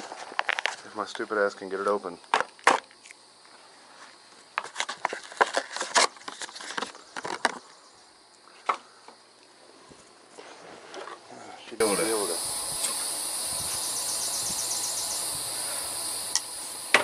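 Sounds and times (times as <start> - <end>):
faint insect hum: 0.0 - 17.0.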